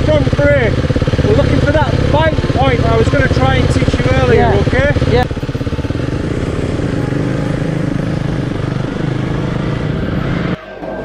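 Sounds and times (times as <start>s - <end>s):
motorcycle engine idling: 0.0s - 10.6s.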